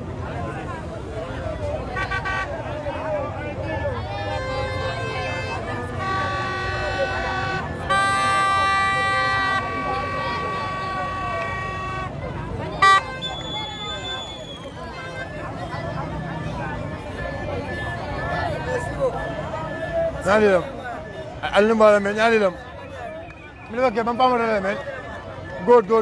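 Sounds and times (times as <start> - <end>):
large crowd noise: 0.0 - 26.0
vehicle horns blasting: 1.8 - 2.8, 4.2 - 15.6.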